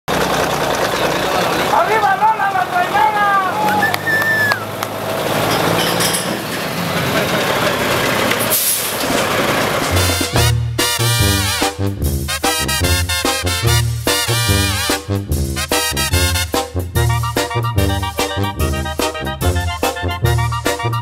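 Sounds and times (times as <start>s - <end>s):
diesel truck engine running: 0.1s - 21.0s
high wavering voice-like call: 3.8s - 4.7s.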